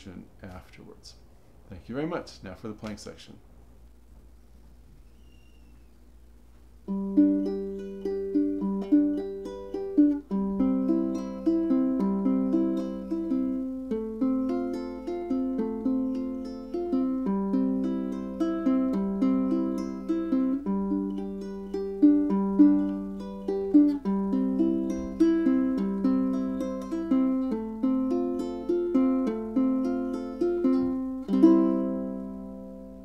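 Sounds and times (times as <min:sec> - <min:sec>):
fingerpicked ukulele: 0:06.8 - 0:33.0.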